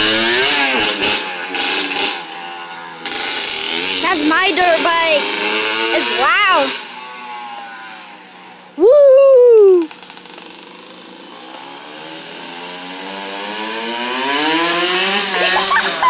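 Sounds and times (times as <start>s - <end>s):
dirt bike engine revving: 0.0s - 8.8s, 9.9s - 16.0s.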